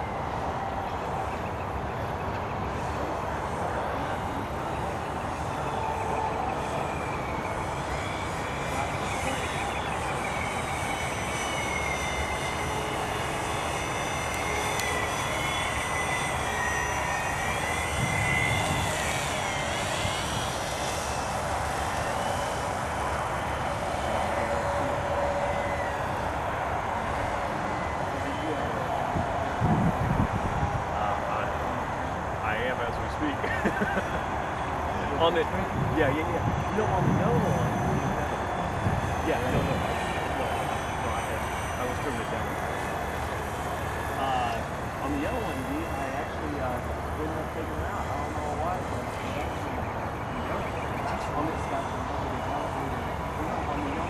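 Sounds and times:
model aircraft motor whining: 2.6s - 54.0s.

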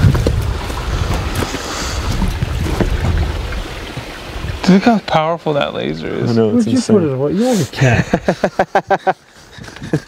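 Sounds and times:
footsteps on rocky ground: 0.0s - 4.1s
wind buffeting microphone: 0.0s - 4.8s.

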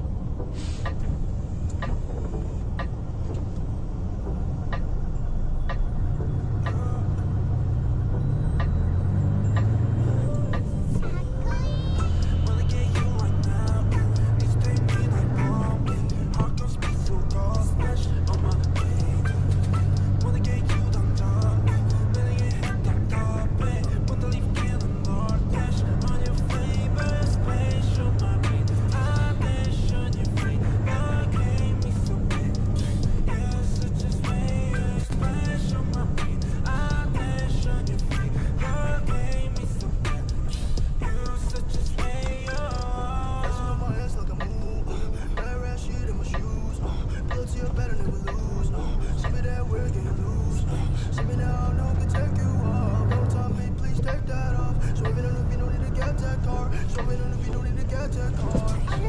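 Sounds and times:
truck engine droning: 0.0s - 59.0s
background music with beat: 0.6s - 6.0s, 11.5s - 44.6s, 56.0s - 59.0s.

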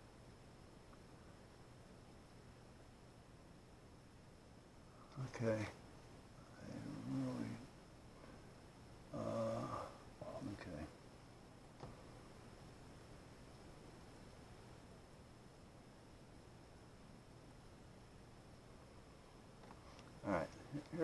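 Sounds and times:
faint electrical hum: 0.0s - 21.0s
faint click: 0.9s - 1.1s
man murmuring: 9.1s - 10.6s.

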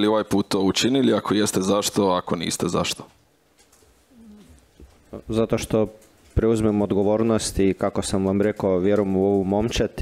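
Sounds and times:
faint low murmured hum: 0.0s - 10.0s.

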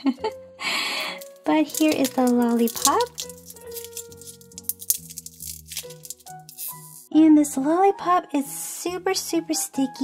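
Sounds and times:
soft background music: 0.0s - 10.0s
plastic wrapper crinkling: 0.9s - 7.1s.

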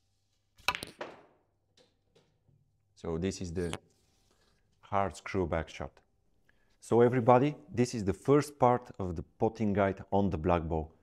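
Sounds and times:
snooker balls cracking together: 0.6s - 1.5s.

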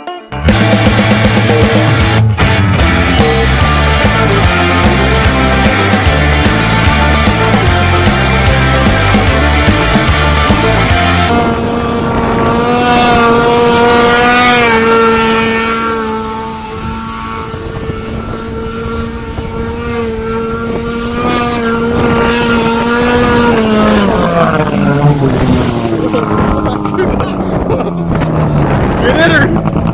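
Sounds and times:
snowmobile engine at high revs: 0.5s - 29.9s.

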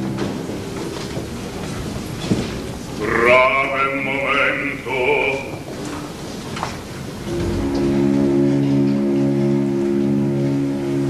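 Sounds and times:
orchestra holding a chord: 7.2s - 11.0s.

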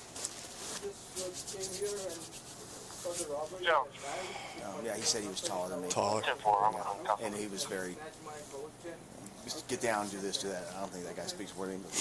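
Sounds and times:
faint voices: 1.1s - 10.9s.

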